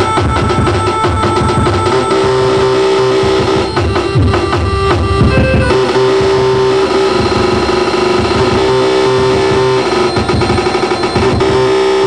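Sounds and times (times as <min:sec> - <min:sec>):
electronic noise music: 0:00.0 - 0:12.0
stuttering mid-pitched drone: 0:00.0 - 0:12.0.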